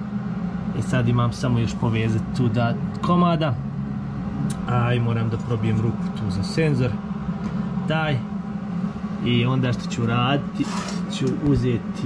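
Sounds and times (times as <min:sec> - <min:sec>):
steady low hum: 0:00.0 - 0:12.0
man speaking: 0:00.8 - 0:03.6, 0:04.4 - 0:07.0, 0:07.9 - 0:08.3, 0:09.2 - 0:12.0.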